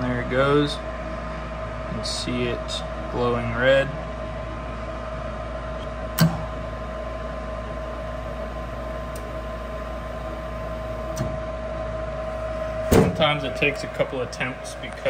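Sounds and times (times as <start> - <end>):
furnace motor humming and whining: 0.0 - 15.0.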